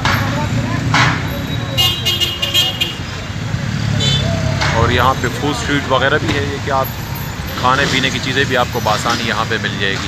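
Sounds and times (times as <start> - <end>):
street traffic: 0.0 - 10.0.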